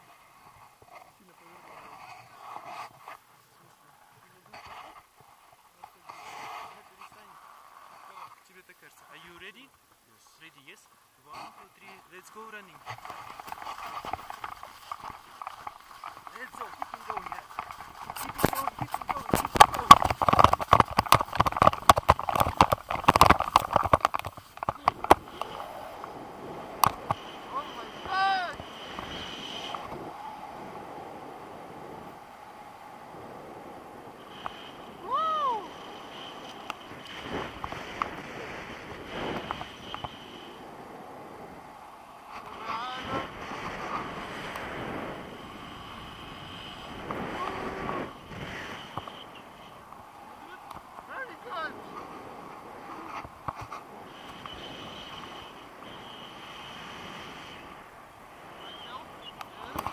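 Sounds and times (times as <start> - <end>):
wind on microphone: 12.8 - 59.9
running footsteps on snow: 12.9 - 25.0
person crying out: 35.0 - 35.7.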